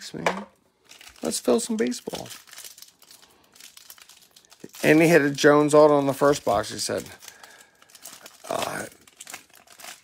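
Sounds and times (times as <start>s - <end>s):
foil wrapper crinkling: 0.8s - 10.0s
man speaking: 1.2s - 2.4s, 4.7s - 7.2s.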